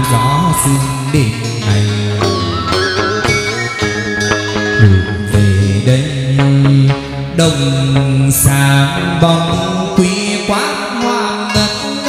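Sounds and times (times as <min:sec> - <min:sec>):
sharp percussion strokes: 0:00.0 - 0:05.9
plucked string notes: 0:00.0 - 0:08.7
person chanting: 0:00.0 - 0:12.0.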